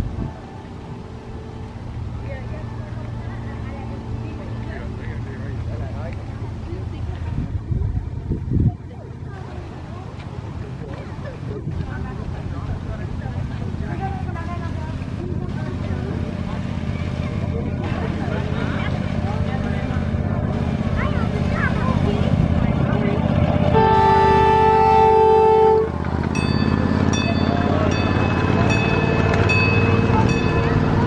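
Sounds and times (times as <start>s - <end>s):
faint passengers' voices: 0.0s - 31.0s
locomotive engine rumble: 0.0s - 31.0s
locomotive chord horn: 17.0s - 30.9s.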